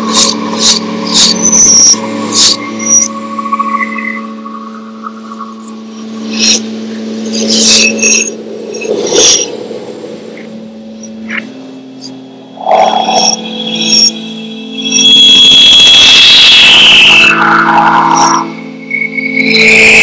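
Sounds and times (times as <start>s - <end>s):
steady low drone: 0.0s - 20.0s
high falling tones: 12.1s - 20.0s
loud wash of noise: 12.5s - 13.5s.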